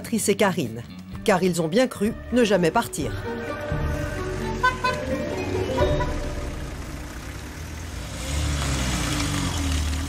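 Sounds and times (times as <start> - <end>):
car engines at low speed: 3.8 - 10.0.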